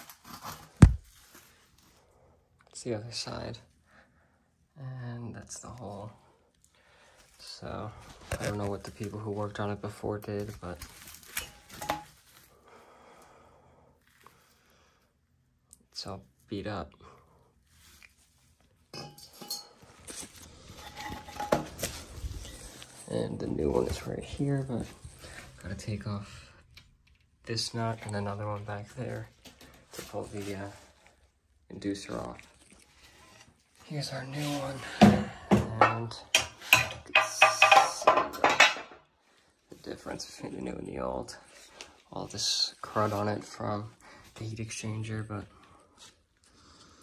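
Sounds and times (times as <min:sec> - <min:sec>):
metal clinks and scrapes: 0:18.9 - 0:25.4.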